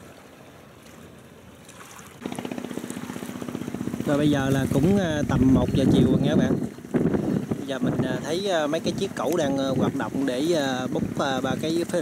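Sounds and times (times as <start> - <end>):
engine running: 2.1 - 12.0.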